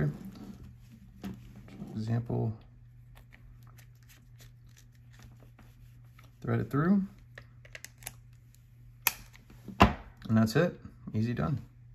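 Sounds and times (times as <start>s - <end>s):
low steady hum: 0.0s - 11.9s.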